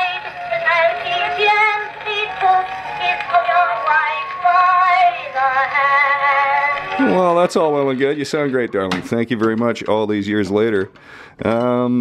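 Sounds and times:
phonograph recording of woman singing: 0:00.0 - 0:07.0.

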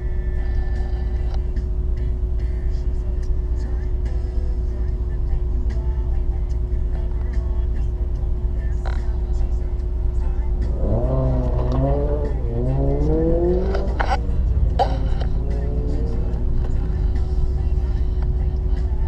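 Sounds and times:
car engine accelerating: 0:00.0 - 0:19.0
car engine idling: 0:00.0 - 0:19.0.

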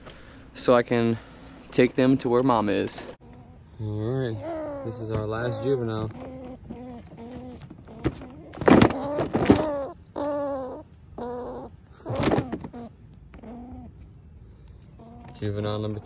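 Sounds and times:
squirrel squealing: 0:03.3 - 0:14.0, 0:15.0 - 0:16.0.

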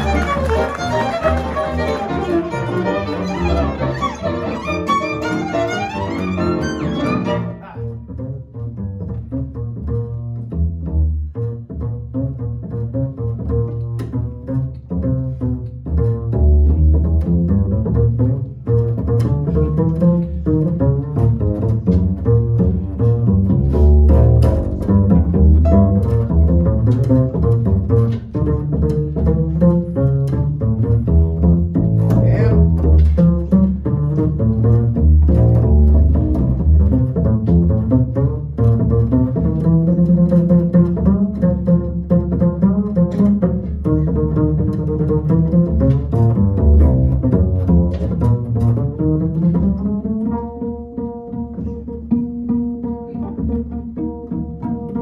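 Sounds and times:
piano chords: 0:00.0 - 0:07.9, 0:24.0 - 0:28.1
plucked double bass: 0:00.0 - 0:55.0
violin: 0:00.0 - 0:55.0.

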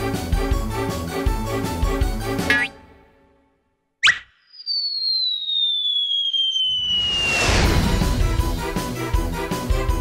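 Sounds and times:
cartoon rising zip: 0:04.0 - 0:07.9
whistle sliding downward: 0:04.0 - 0:07.9.

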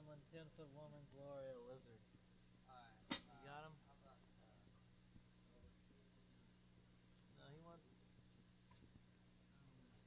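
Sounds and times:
electrical hum: 0:00.0 - 0:10.0
sharp click: 0:03.1 - 0:03.3.

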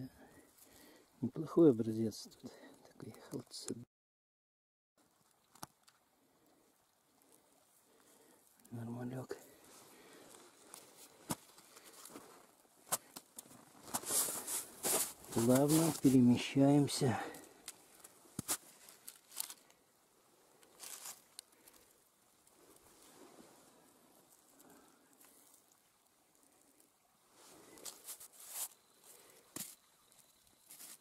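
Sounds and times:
rocks clicking together: 0:05.2 - 0:06.0, 0:10.6 - 0:16.0
dry leaves and snow rustling: 0:09.5 - 0:25.7, 0:26.4 - 0:31.0.

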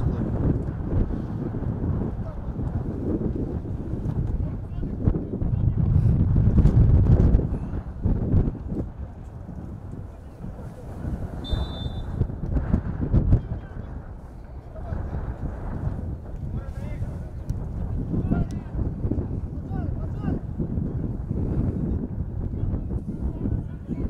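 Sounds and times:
wind buffeting microphone: 0:00.0 - 0:24.0
short high whistle: 0:11.4 - 0:12.2.

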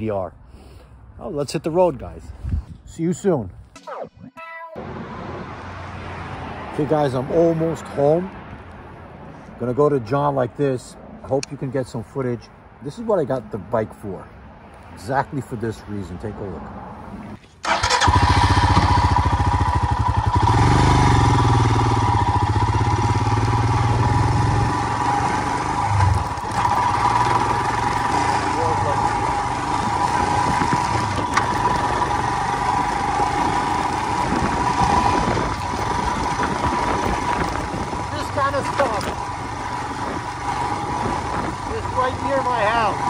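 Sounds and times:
motorcycle engine running: 0:17.7 - 0:43.0.

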